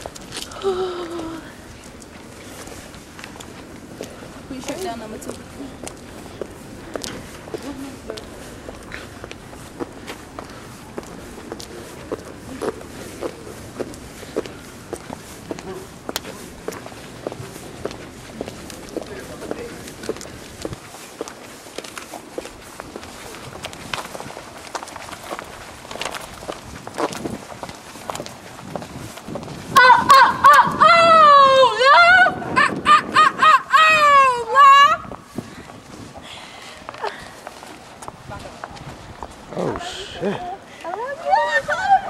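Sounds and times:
faint voices: 0.0 - 26.2, 29.8 - 42.0
footsteps on pavement: 0.0 - 31.4, 33.9 - 42.0
loud high-pitched shout: 29.8 - 35.1.

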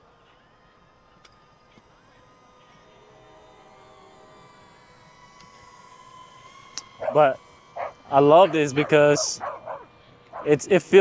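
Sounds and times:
drone propellers whining: 0.0 - 11.0.

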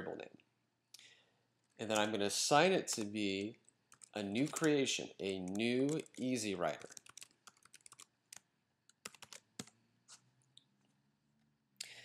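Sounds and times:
faint keyboard typing: 1.0 - 10.6.

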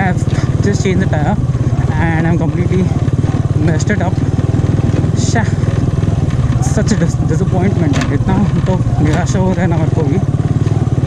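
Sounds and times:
motorcycle engine running steadily: 0.0 - 11.0.

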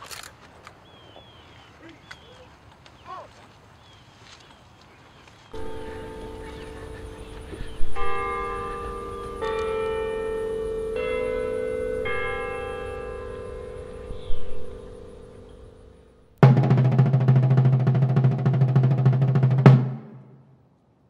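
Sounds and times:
slow bell melody: 5.6 - 16.4.

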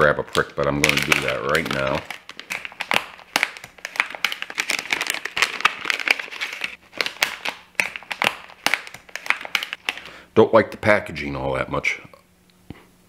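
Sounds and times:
plastic bag crinkling: 0.2 - 10.1.

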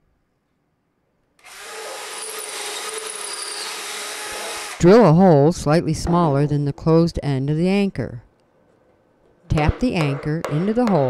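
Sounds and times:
cordless drill boring into wall: 1.4 - 4.8.

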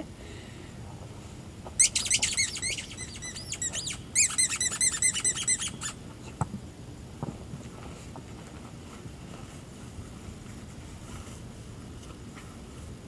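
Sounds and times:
squeaky dog toy squeaking: 1.8 - 6.0.

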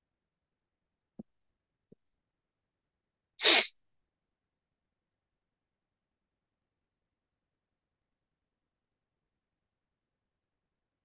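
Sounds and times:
person sneezing: 3.4 - 3.7.

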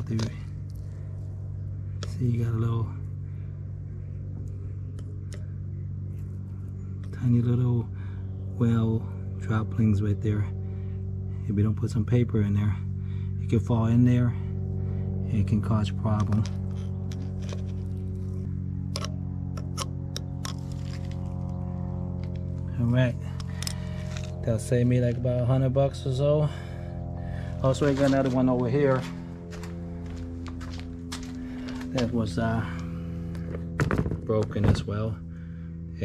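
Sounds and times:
low machine hum: 0.0 - 36.0.

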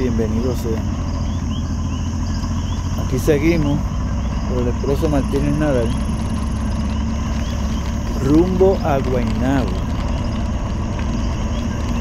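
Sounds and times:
crickets trilling: 0.0 - 12.0
frogs chirping: 0.0 - 12.0
low rumble: 0.0 - 12.0.

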